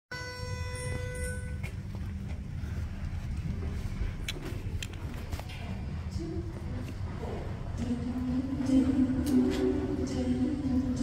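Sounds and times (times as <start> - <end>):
steady low rumble: 1.6 - 11.0.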